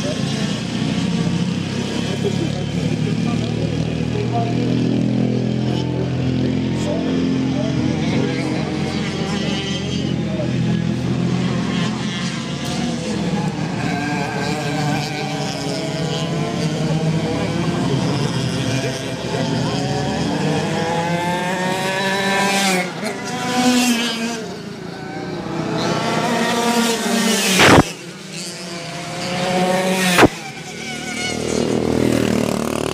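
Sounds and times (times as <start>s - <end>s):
kart engines revving: 0.0s - 32.9s.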